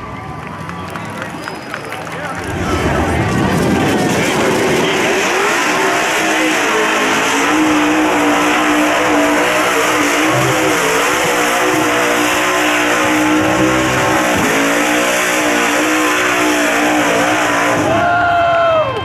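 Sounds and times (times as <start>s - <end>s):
truck engine revving: 0.4s - 18.2s.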